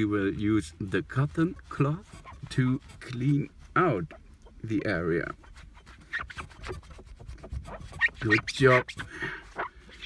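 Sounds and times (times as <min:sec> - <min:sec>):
cloth rubbing on glass: 0:00.0 - 0:10.0.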